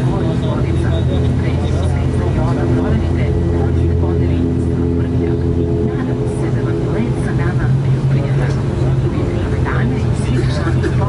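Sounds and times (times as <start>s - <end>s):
turboprop engine drone: 0.0s - 11.0s.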